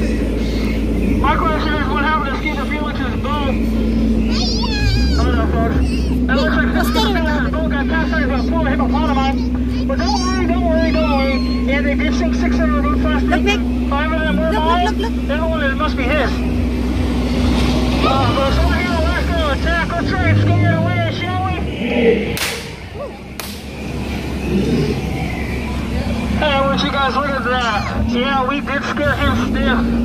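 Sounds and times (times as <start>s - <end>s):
people talking: 0.0s - 16.6s, 17.9s - 23.3s, 24.5s - 30.0s
boat motor humming: 0.0s - 30.0s.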